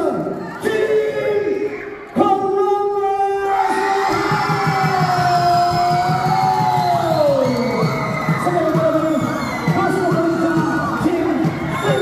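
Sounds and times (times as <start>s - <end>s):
amplified vocal shout: 0.0s - 12.0s
crowd cheering: 0.0s - 12.0s.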